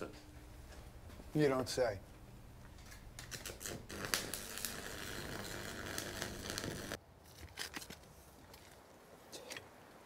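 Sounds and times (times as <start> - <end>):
arc welding crackling: 2.6 - 7.0.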